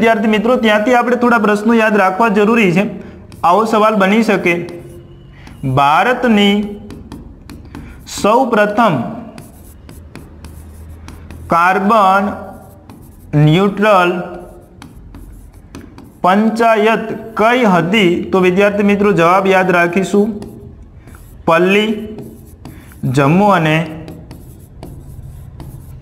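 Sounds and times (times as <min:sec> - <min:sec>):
pen scratching on board: 0:03.0 - 0:17.6, 0:20.0 - 0:26.0.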